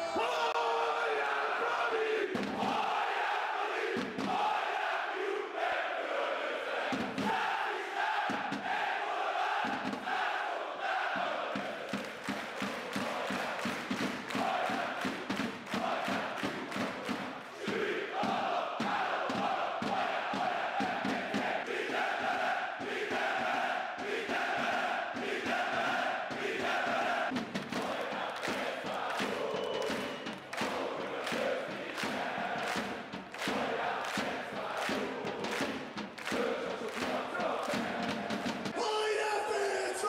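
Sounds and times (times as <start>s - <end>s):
crowd chanting in unison: 0.0s - 40.0s
rhythmic hand claps: 11.0s - 38.8s.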